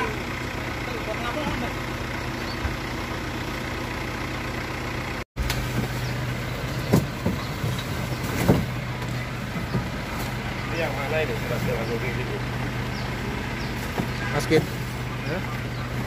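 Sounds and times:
truck idling: 0.0s - 16.0s.

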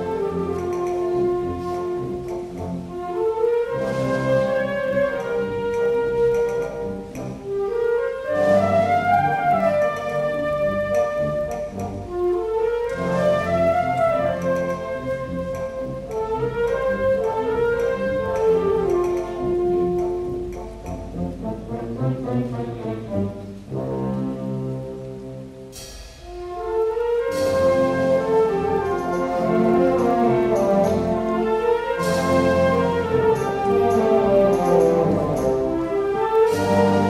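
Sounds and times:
wind band playing a pasodoble: 0.0s - 37.0s.

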